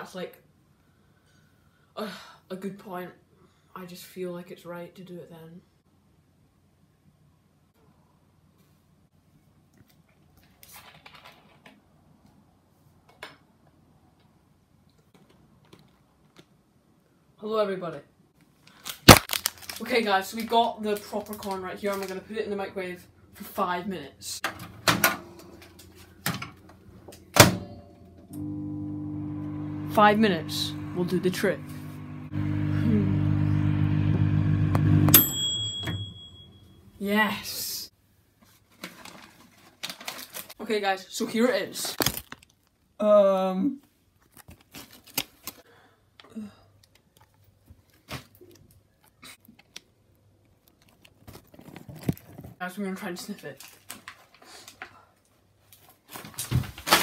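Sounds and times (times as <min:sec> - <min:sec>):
paper bag crinkling: 0:18.6 - 0:22.4, 0:38.7 - 0:40.6, 0:41.8 - 0:42.8, 0:44.2 - 0:45.6, 0:50.5 - 0:52.6
microwave oven humming: 0:24.8 - 0:37.0.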